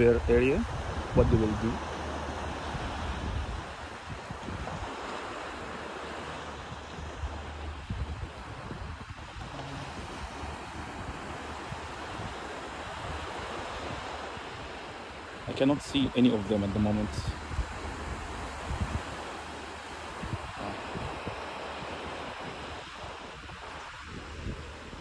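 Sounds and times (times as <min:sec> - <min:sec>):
surf washing on beach: 0:00.0 - 0:25.0
wind on microphone: 0:00.0 - 0:25.0.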